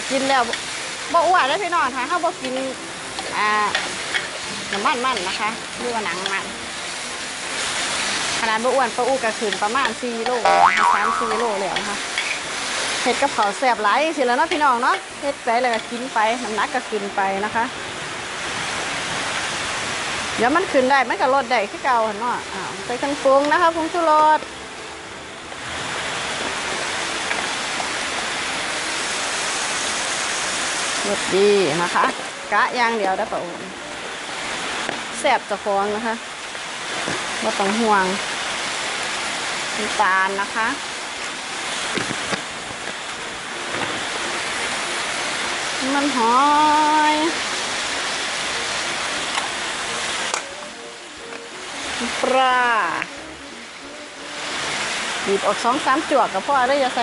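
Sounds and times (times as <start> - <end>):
food sizzling in hot oil: 0.0 - 24.5, 25.6 - 57.0.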